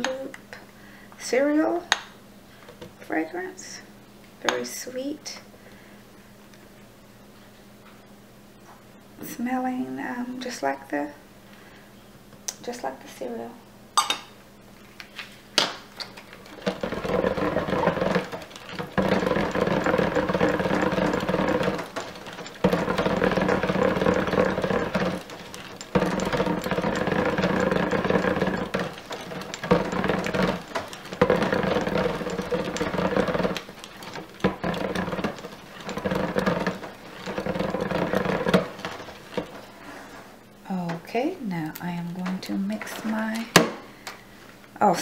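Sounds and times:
stick blender motor humming: 16.0 - 40.1.

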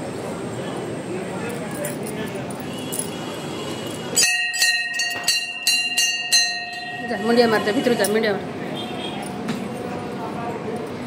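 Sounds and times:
murmur of voices: 0.0 - 4.3, 5.1 - 11.0
metal temple bell ringing: 3.9 - 8.3.

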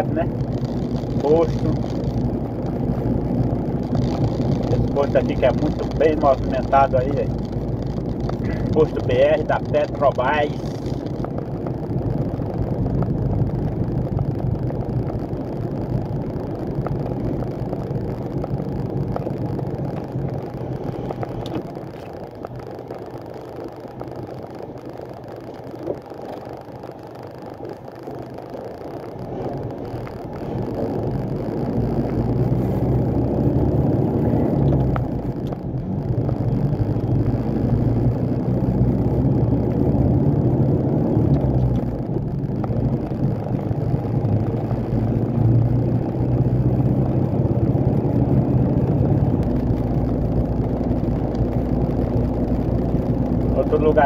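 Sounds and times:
road noise: 0.0 - 54.0
truck diesel engine: 0.0 - 54.0.

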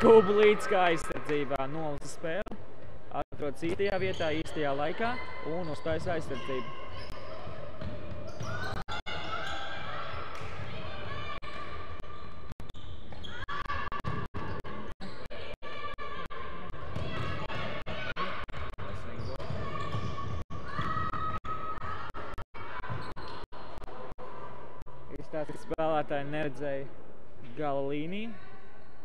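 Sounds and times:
shoe squeaks: 3.9 - 10.4, 12.1 - 13.6, 22.8 - 23.7.

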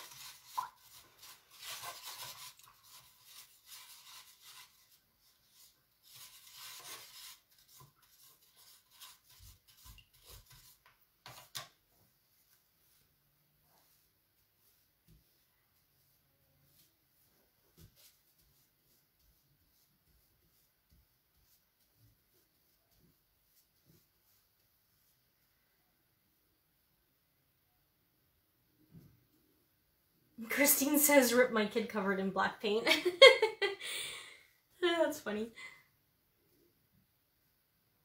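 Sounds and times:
paintbrush rubbing and scrubbing: 0.0 - 25.5.

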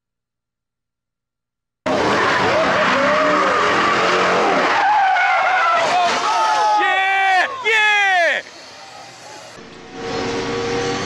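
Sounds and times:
car accelerating hard: 1.9 - 6.5
tyres squealing: 2.1 - 9.6
spectators crying out: 2.4 - 9.2.

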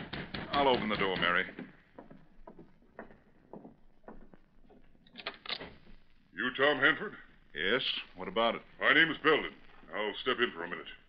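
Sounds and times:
footsteps crossing a floor: 0.8 - 6.2.

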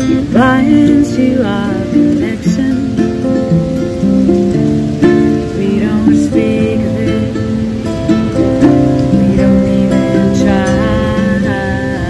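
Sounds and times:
acoustic guitar strummed: 0.0 - 12.0
ukulele strummed: 0.0 - 12.0.

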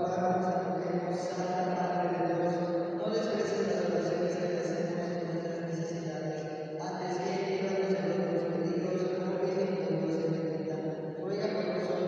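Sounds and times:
congregation chanting prayers: 0.0 - 12.0.

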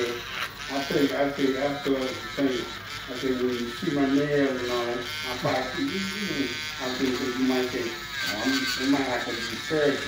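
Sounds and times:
indistinct talking: 0.0 - 10.0
nail drill grinding toenail: 0.0 - 10.0.

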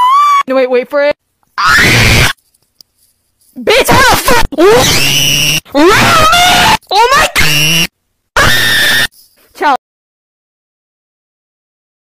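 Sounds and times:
person screaming: 1.6 - 2.4, 4.6 - 9.1.

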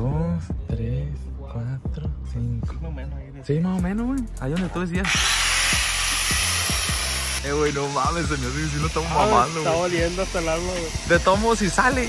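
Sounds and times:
angle grinder cutting steel: 5.0 - 12.0.

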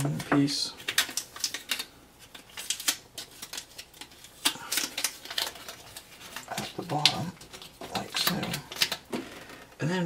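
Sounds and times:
man talking: 0.0 - 0.8, 6.5 - 8.8, 9.8 - 10.0.

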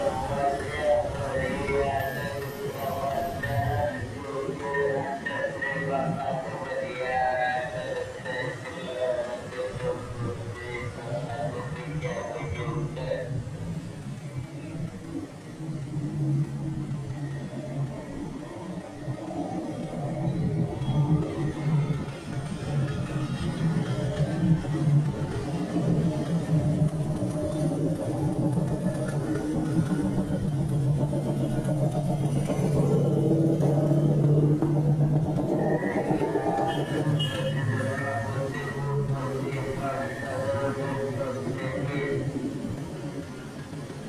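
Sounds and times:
motorbikes passing: 19.3 - 44.0
cars passing: 19.4 - 44.0.

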